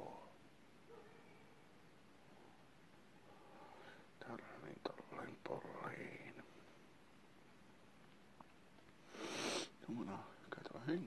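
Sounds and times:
man whispering: 0:00.0 - 0:00.4, 0:04.1 - 0:06.7, 0:09.8 - 0:11.0.

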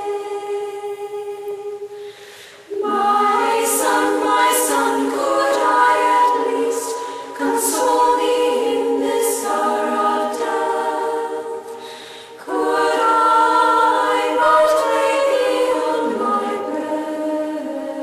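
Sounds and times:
choir singing a cappella hymn: 0:00.0 - 0:18.0.

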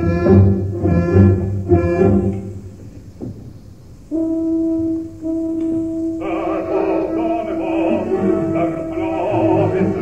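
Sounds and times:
orchestra chords: 0:00.0 - 0:03.0, 0:04.0 - 0:10.0
held orchestral note: 0:04.0 - 0:10.0.

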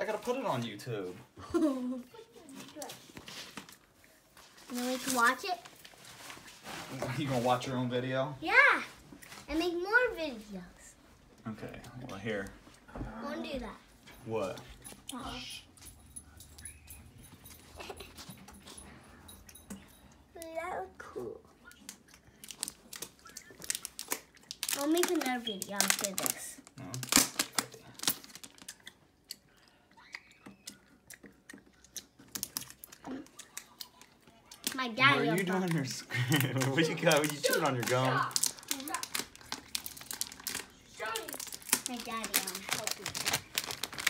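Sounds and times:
plastic film crinkling: 0:02.4 - 0:08.2, 0:22.3 - 0:29.0, 0:32.2 - 0:44.0
faint clicks and rustles: 0:21.6 - 0:44.0.

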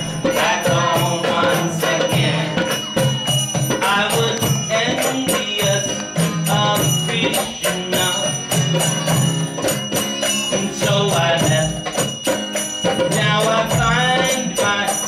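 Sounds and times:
man singing: 0:00.0 - 0:03.1, 0:03.7 - 0:09.1, 0:10.3 - 0:12.2, 0:12.8 - 0:15.0
jingling hand percussion: 0:00.0 - 0:15.0.

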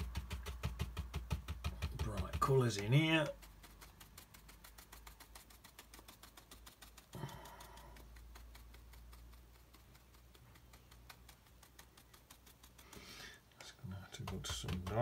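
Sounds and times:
brush scrubbing: 0:00.0 - 0:15.0
brush tapping on paper: 0:00.0 - 0:15.0.

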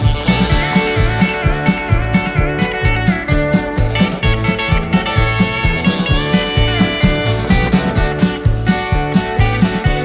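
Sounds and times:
drums: 0:00.0 - 0:10.0
electric guitar lead with bent notes: 0:00.0 - 0:10.0
upright bass: 0:00.0 - 0:10.0.

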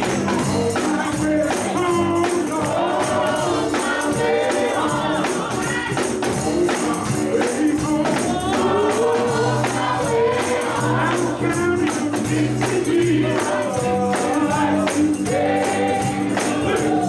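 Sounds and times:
electric guitar: 0:00.0 - 0:17.0
singers singing together: 0:00.0 - 0:17.0
steady percussion beat: 0:00.0 - 0:17.0.

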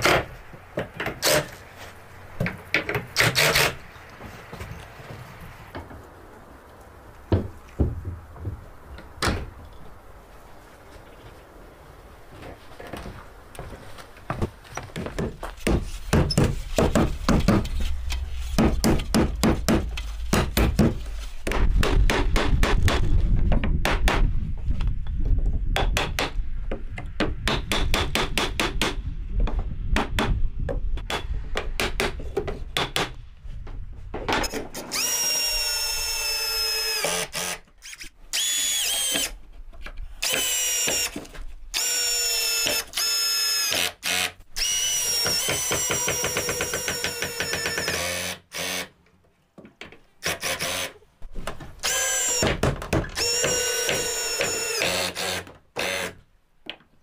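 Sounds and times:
cordless drill driving screws: 0:34.4 - 0:39.3, 0:40.2 - 0:41.2, 0:41.8 - 0:48.9, 0:50.2 - 0:51.0, 0:51.8 - 0:52.6, 0:53.2 - 0:56.2.

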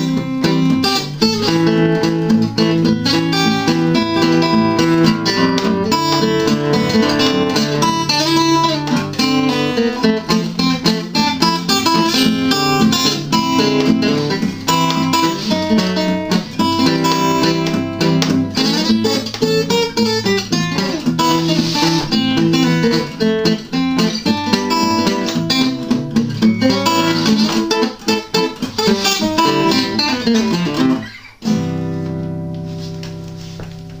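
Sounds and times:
acoustic guitar picking and chords: 0:00.0 - 0:34.0.

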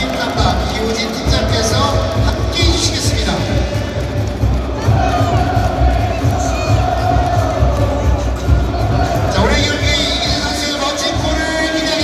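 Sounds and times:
crowd chanting and cheering: 0:00.0 - 0:12.0
steady low beat: 0:00.0 - 0:12.0.

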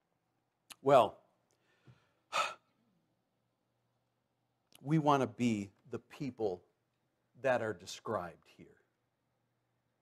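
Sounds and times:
man's sharp breath: 0:01.6 - 0:02.8.

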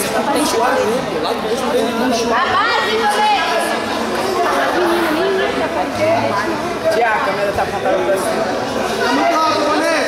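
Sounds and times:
spectators shouting and talking: 0:00.0 - 0:10.0.

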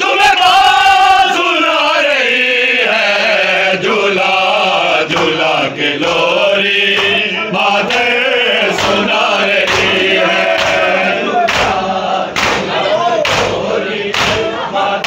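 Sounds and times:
men chanting in unison: 0:00.0 - 0:15.0.

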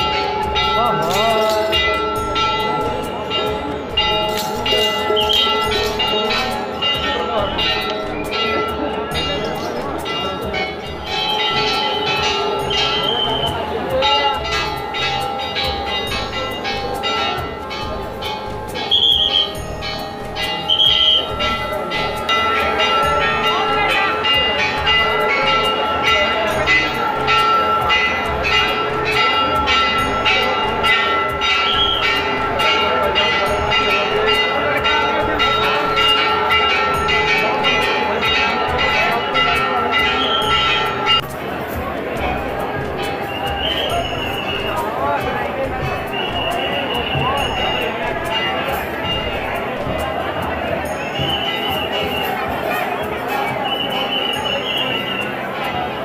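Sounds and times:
metal temple bells clanging: 0:00.0 - 0:56.0.

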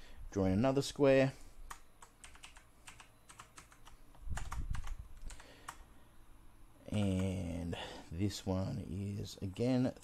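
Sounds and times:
keyboard typing: 0:01.7 - 0:05.8, 0:06.9 - 0:07.5.

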